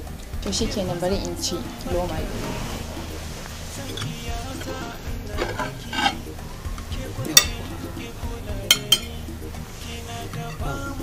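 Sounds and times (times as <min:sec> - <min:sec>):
ceramic plates clinking: 0:03.4 - 0:07.8, 0:08.7 - 0:09.2.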